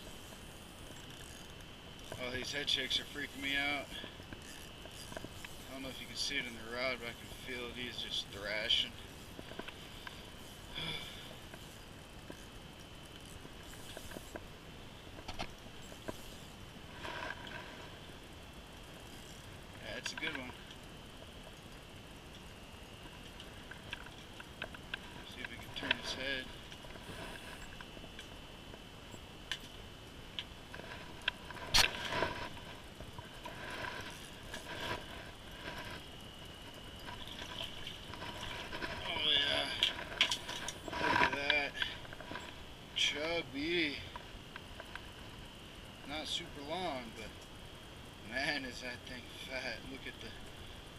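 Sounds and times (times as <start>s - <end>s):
clicks and knocks of gear: 36.6s - 42.6s.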